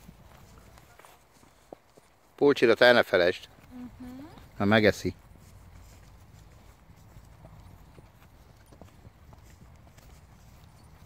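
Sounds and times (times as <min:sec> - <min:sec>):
horse hoofbeats on grass and dirt: 0:00.0 - 0:11.0.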